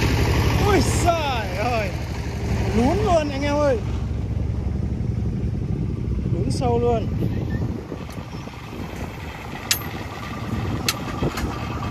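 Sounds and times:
diesel engine low rumble: 0.0 - 11.9
sharp metal clanks: 9.6 - 11.5.

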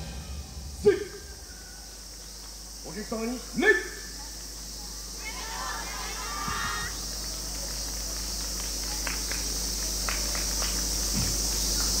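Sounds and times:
cicadas buzzing: 0.0 - 12.0.

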